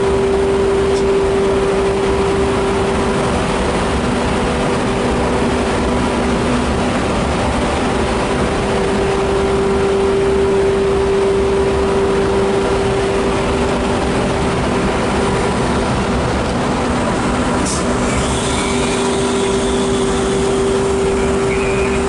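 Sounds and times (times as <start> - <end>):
electric locomotive blowers droning: 0.0 - 22.0.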